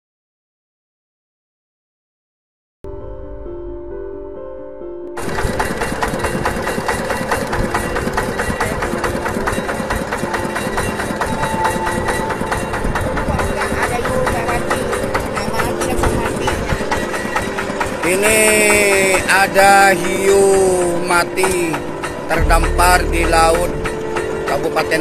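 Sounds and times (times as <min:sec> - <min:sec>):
background music: 0:02.9 - 0:25.0
boat engine running: 0:05.2 - 0:25.0.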